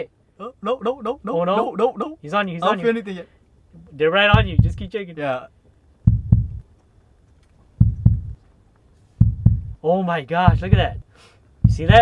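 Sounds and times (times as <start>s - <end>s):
slow heartbeat: 4.4s - 4.9s, 6.0s - 6.6s, 7.8s - 8.4s, 9.2s - 9.8s, 10.5s - 11.0s, 11.6s - 12.0s.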